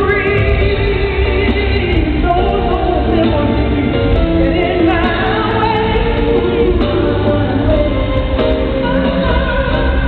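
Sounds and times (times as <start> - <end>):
full band playing: 0.0 - 10.0
woman singing soul vocals: 0.0 - 10.0.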